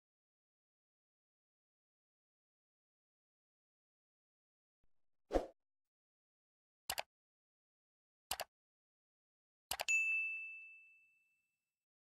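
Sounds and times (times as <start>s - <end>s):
bright bell ding: 9.9s - 11.4s.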